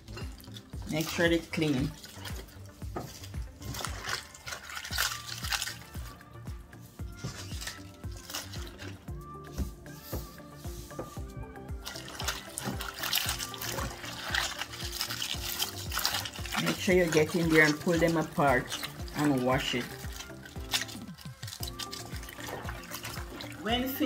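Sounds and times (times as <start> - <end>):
cabbage splashing in water: 0.0 - 9.7, 11.7 - 24.0
background music: 0.0 - 24.0.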